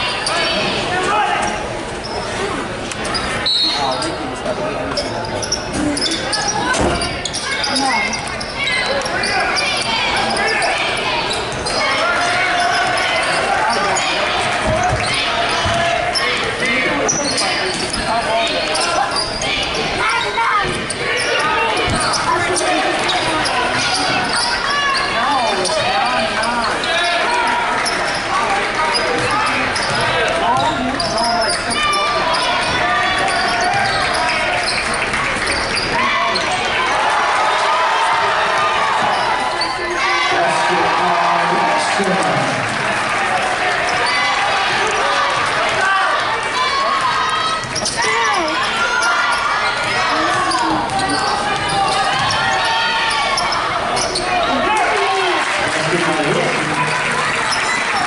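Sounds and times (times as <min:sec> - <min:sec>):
voices and shouts echoing: 0:00.0 - 0:58.0.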